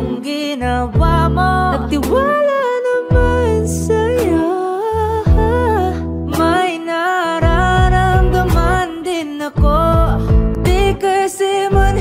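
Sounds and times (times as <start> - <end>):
slow pop song with vocals: 0.0 - 12.0.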